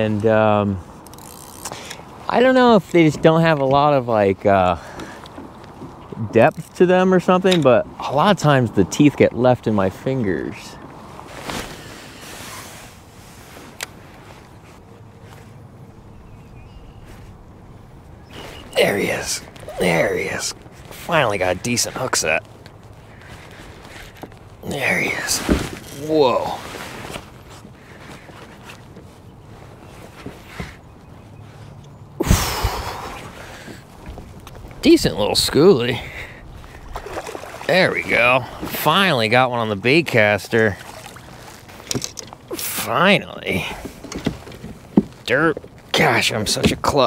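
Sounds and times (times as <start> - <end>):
wind rumble on microphone: 32.2 - 37.7
fish splashing in water: 36.6 - 37.7.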